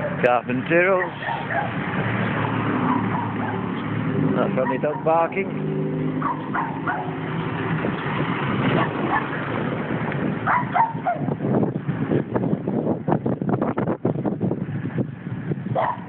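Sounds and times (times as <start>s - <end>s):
dog barking and yipping: 0.0s - 0.2s, 0.9s - 1.8s, 2.8s - 3.9s, 4.6s - 5.4s, 6.2s - 7.4s, 8.7s - 9.4s, 10.4s - 11.4s, 15.8s - 16.0s
car engine: 0.0s - 16.0s.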